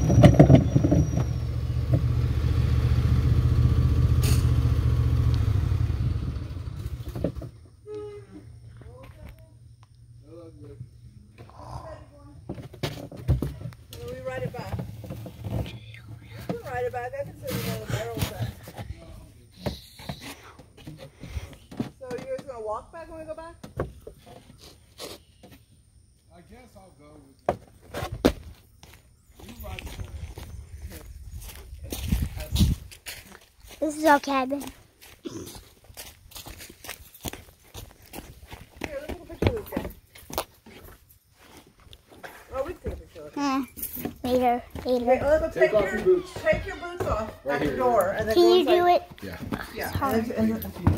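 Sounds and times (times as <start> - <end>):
footsteps on dry leaves: 29.5 - 38.8.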